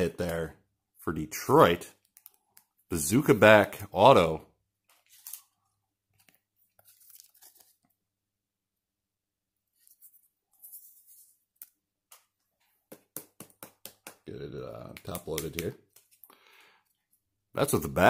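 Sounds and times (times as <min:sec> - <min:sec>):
trading card rustling and clicking: 0:01.9 - 0:02.8, 0:04.8 - 0:08.0, 0:09.8 - 0:17.3.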